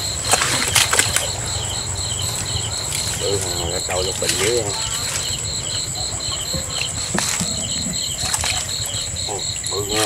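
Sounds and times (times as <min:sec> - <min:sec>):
insects chirping: 0:00.0 - 0:10.0
stems rustling and snapping: 0:00.2 - 0:01.4, 0:02.4 - 0:05.4, 0:06.8 - 0:07.5, 0:08.2 - 0:08.8.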